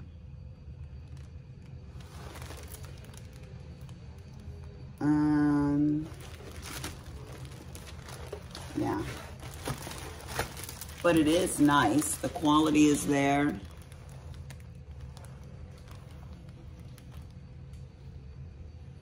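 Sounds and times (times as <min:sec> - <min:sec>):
plastic film crinkling: 0:00.8 - 0:04.8, 0:05.9 - 0:18.3.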